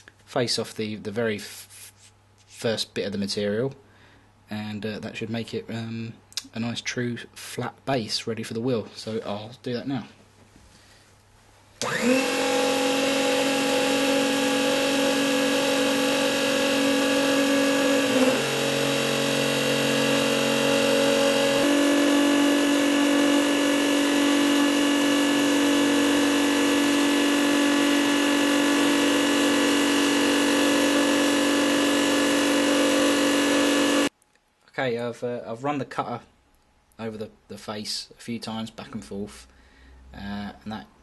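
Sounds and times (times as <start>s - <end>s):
lathe motor whining: 11.8s - 34.1s.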